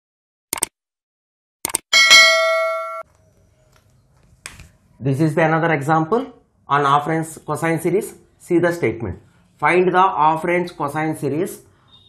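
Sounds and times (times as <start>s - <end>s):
bell chime ringing: 2.0s - 3.0s.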